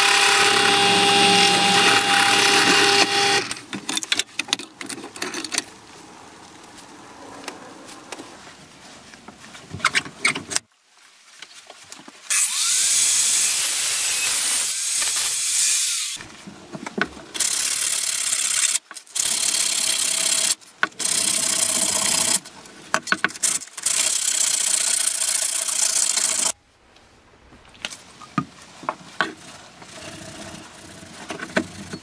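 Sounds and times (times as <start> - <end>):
power tool motor hum: 0.0 - 3.6.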